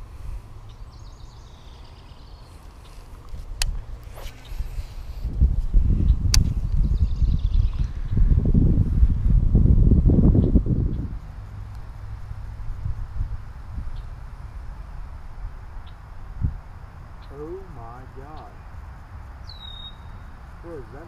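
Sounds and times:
wind buffeting microphone: 0:02.3 - 0:21.0
sharp clicks: 0:06.3 - 0:06.6.

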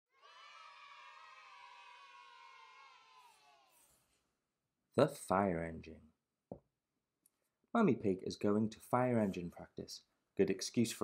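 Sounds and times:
children cheering: 0:00.1 - 0:04.0.

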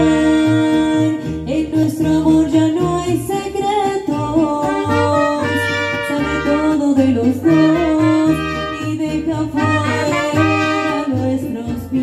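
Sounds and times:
person singing into a microphone: 0:00.0 - 0:12.0
strummed guitars: 0:00.0 - 0:12.0.

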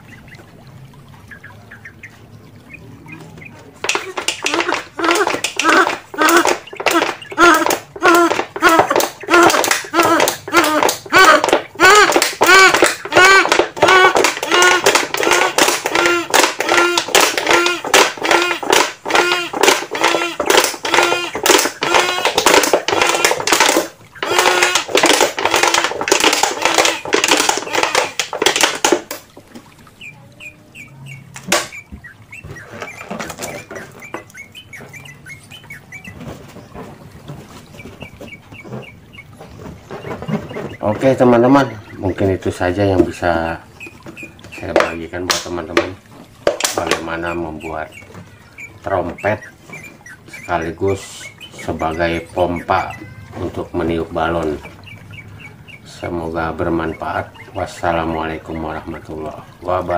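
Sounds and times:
bottle trumpet honking toots: 0:03.9 - 0:28.9.

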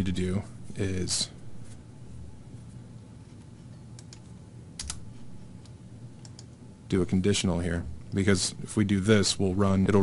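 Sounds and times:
steady low hum: 0:00.0 - 0:10.0
keyboard keystrokes: 0:04.0 - 0:05.0.

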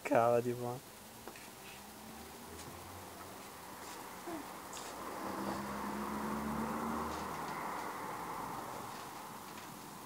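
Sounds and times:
motor vehicle passing: 0:01.6 - 0:10.0.

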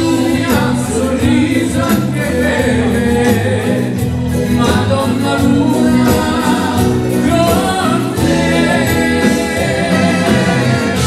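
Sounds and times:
drums: 0:00.0 - 0:11.0
man and woman singing: 0:00.0 - 0:11.0
dance orchestra playing: 0:07.0 - 0:11.0
saxophone: 0:08.1 - 0:11.0.

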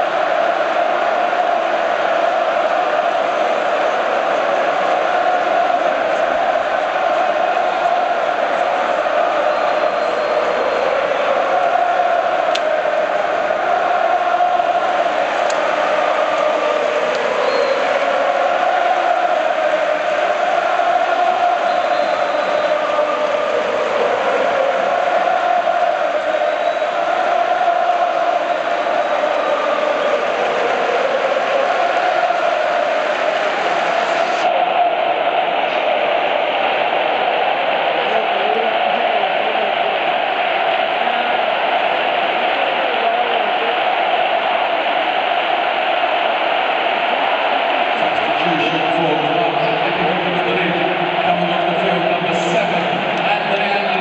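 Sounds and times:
stadium crowd singing a chant: 0:00.0 - 0:54.0.

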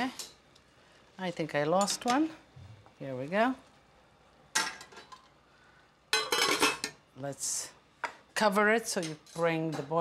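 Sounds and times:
metal tongs clanking on pot: 0:01.8 - 0:02.3, 0:08.9 - 0:10.0.

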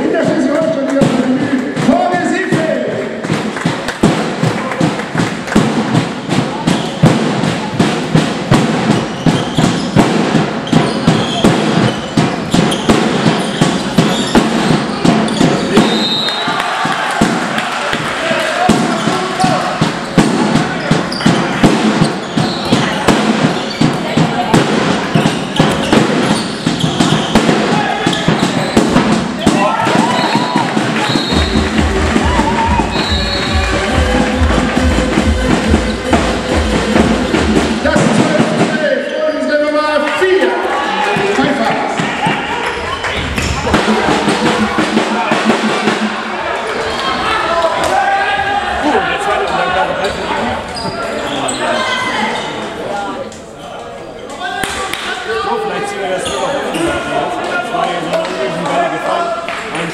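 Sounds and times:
voices and spectators: 0:00.0 - 0:59.9
echoing knocks and thuds: 0:00.1 - 0:16.2, 0:16.8 - 0:38.9.

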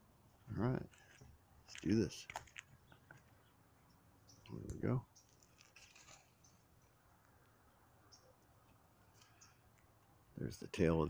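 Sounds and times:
person speaking: 0:00.5 - 0:02.4.

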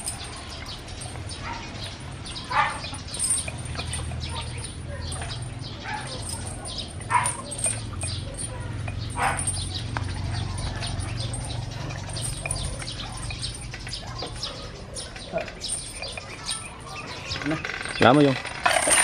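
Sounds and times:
small birds chirping: 0:00.0 - 0:18.6.

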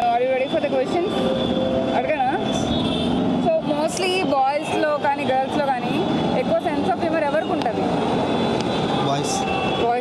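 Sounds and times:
road traffic: 0:00.0 - 0:10.0.

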